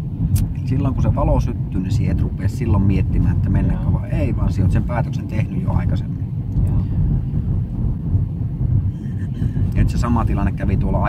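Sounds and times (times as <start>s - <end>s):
engine and road noise in car: 0.0s - 11.0s.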